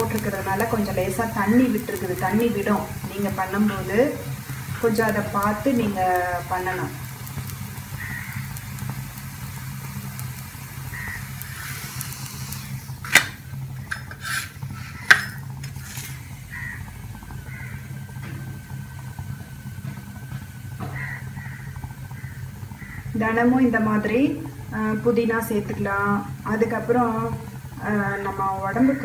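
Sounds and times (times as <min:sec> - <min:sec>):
bread sizzling on griddle: 0:00.0 - 0:29.0
spatula scraping: 0:13.8 - 0:16.2
metal spatula knocking on griddle: 0:15.0 - 0:15.4, 0:20.8 - 0:21.2.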